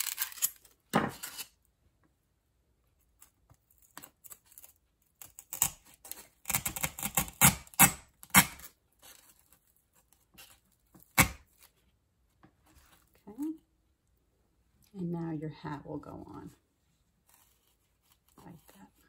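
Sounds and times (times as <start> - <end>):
scraping and rustling: 16.5 - 19.0.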